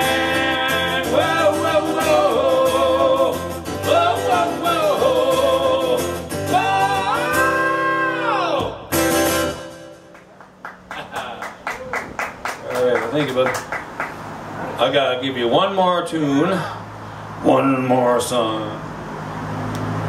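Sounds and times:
man singing: 0.0s - 8.9s
strummed acoustic guitar: 0.0s - 10.9s
audience clapping: 10.0s - 14.6s.

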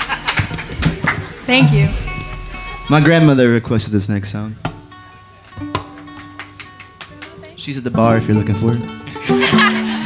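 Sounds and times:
faint held string tones: 1.5s - 3.8s
plucked string note ringing: 1.5s - 4.0s.

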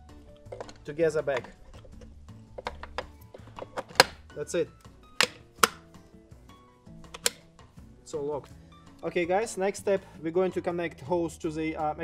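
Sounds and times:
background music: 0.0s - 12.0s
part snapping into place: 0.4s - 4.3s, 5.1s - 5.9s, 7.1s - 7.5s
plastic and metal parts clicking: 0.4s - 4.3s, 5.1s - 5.9s, 7.1s - 7.4s.

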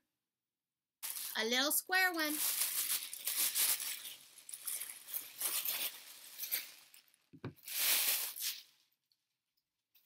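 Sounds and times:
wrapping crinkling and rustling: 1.0s - 8.9s.

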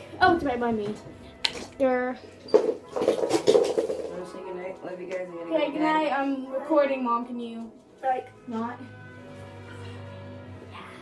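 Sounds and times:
makeup items clattering: 2.5s - 4.3s.

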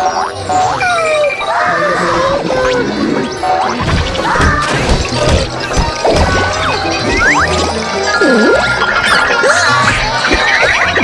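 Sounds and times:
cartoon sound effects: 0.0s - 11.0s
music: 0.0s - 11.0s.

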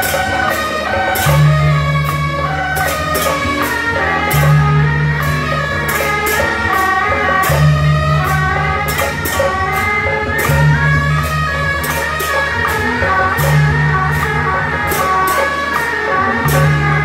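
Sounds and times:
drum: 0.0s - 17.0s
hand cymbals clashing: 0.0s - 17.0s
trumpets playing melody: 0.0s - 17.0s.

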